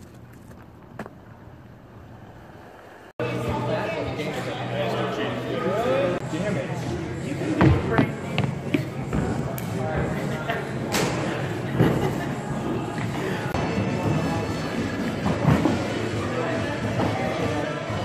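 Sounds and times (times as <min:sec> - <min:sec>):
people talking: 0:03.2 - 0:18.0.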